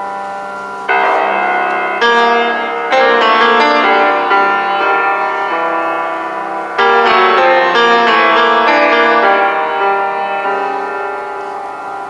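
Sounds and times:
grand piano playing jazz chords: 0.0 - 12.0.

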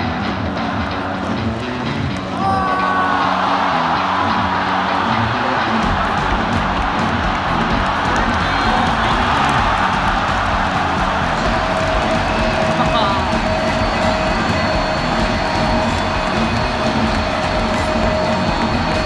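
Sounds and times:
music playing: 0.0 - 19.0
stadium crowd cheering: 0.0 - 19.0.

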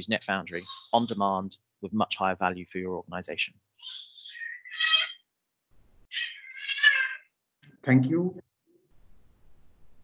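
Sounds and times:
high-pitched drawn-out cries: 3.8 - 5.2, 6.1 - 7.2.

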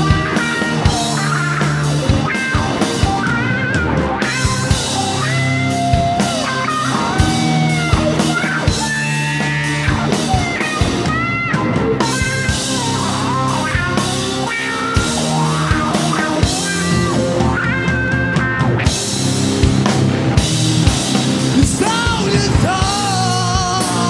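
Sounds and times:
bass guitar: 0.0 - 24.0
drum kit beat: 0.0 - 24.0
electric guitars: 0.0 - 24.0
sliding lead melody: 0.0 - 24.0.

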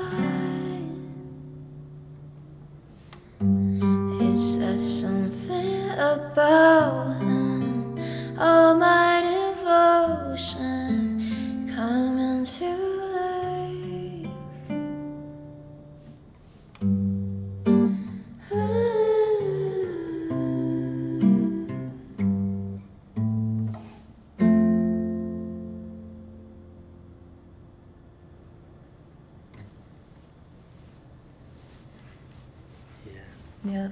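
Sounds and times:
person singing: 0.0 - 1.3, 4.0 - 11.1, 18.4 - 22.2
classical guitar chords: 0.0 - 12.6, 13.3 - 29.6.

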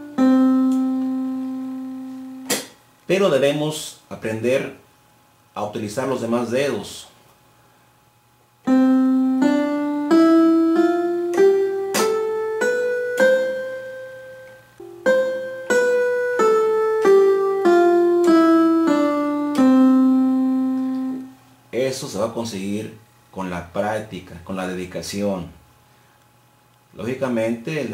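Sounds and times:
keyboard piano scale: 0.0 - 2.6, 8.6 - 21.4.

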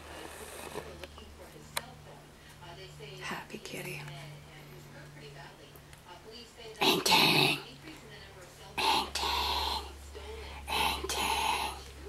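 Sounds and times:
person whispering: 8.8 - 12.0.

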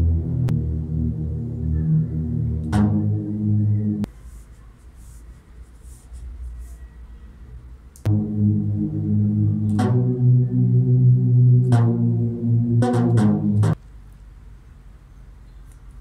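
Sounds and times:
synthesizer chords with deep bass: 0.0 - 4.1, 8.1 - 13.8.

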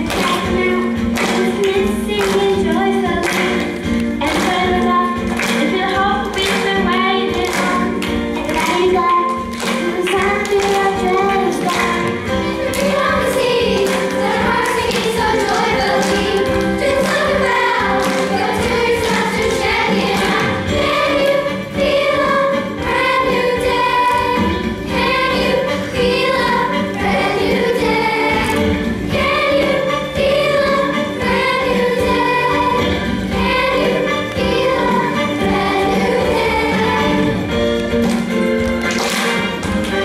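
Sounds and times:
children's choir singing: 0.0 - 40.0.

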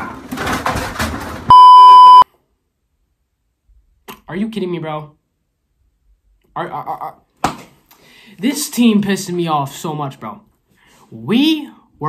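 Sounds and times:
high-pitched censor bleep: 1.5 - 2.2.

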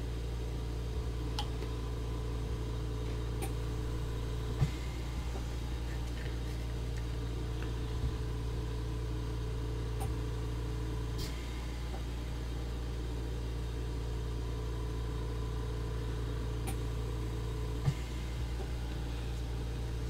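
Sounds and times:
low hum: 0.0 - 20.0.

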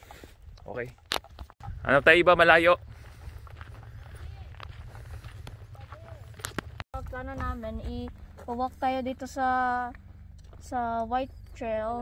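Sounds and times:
wind rumble on microphone: 1.3 - 8.4
footsteps on gravel: 2.5 - 11.6.

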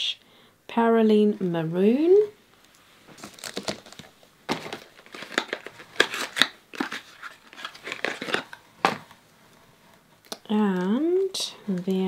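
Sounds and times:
paper packaging rustling: 3.1 - 9.0.

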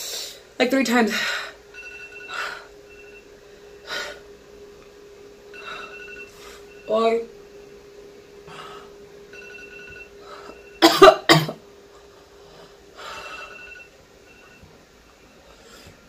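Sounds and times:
soft breaths: 8.4 - 9.0
woman coughing: 10.8 - 11.6.

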